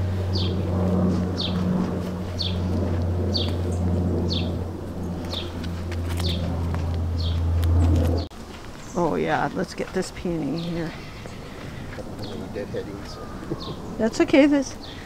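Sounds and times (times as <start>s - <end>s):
steady low hum: 0.0s - 15.0s
small bird chirping: 12.2s - 15.0s.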